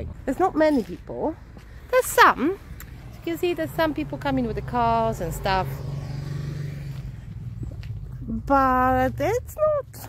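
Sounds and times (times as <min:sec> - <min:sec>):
car going by: 0:02.6 - 0:10.0.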